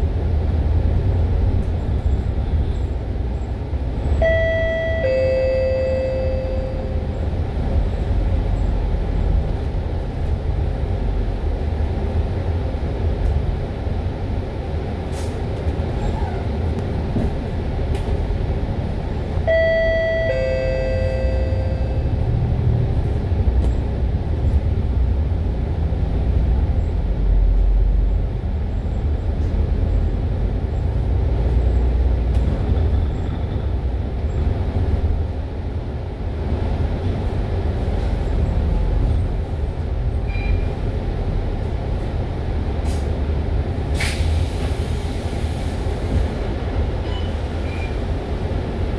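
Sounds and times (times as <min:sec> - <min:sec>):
bus engine and road rumble: 0:00.0 - 0:48.9.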